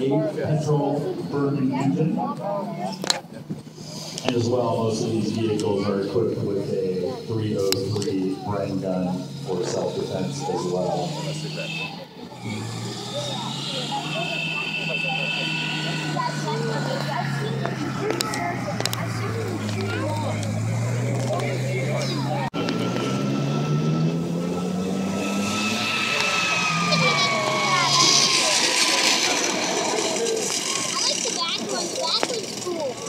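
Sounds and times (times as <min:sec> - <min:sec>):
armoured vehicle engine driving: 0:00.0 - 0:33.0
crowd chatter: 0:00.0 - 0:33.0
vehicle engine rising in pitch: 0:04.4 - 0:33.0.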